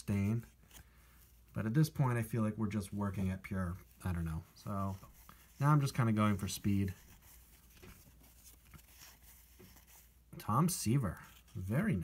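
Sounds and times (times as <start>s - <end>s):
cardboard cards flipped through: 7.0s - 10.1s.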